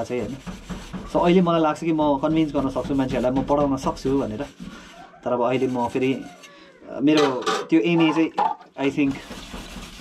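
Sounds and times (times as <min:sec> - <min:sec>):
faint rubbing: 0:00.0 - 0:06.6, 0:07.9 - 0:10.0.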